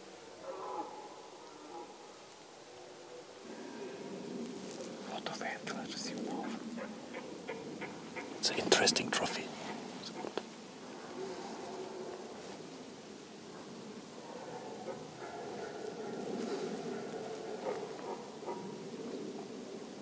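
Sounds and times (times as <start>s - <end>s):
soft rustling: 4.2s - 6.7s, 9.4s - 13.0s
person whispering: 5.0s - 6.6s, 8.4s - 10.2s.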